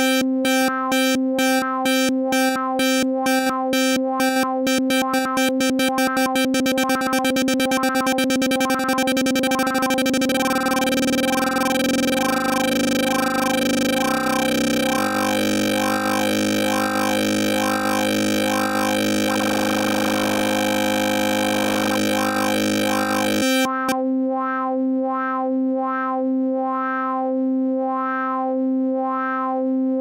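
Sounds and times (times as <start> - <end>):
electronic synthesizer drone: 0.0 - 24.0
repeating synth pulse: 0.0 - 24.0
grainy noisy synth layer: 4.9 - 24.0.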